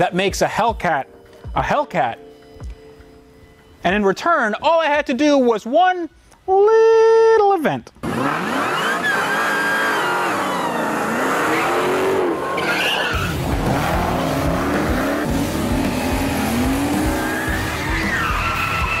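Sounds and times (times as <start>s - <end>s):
engines revving: 8.0s - 19.0s
tyres squealing: 8.2s - 19.0s
heavy music beat: 13.2s - 19.0s.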